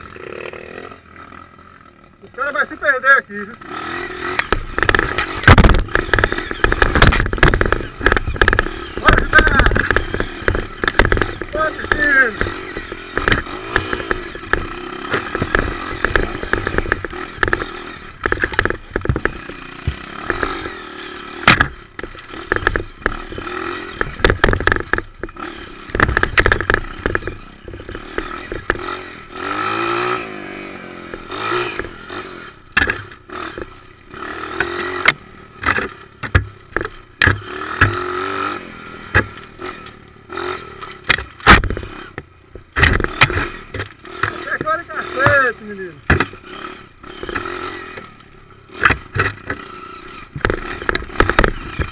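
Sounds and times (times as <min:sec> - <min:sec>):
motorcycle engine revving: 0:00.0 - 0:51.9
bike knocks and rattles: 0:03.9 - 0:51.9.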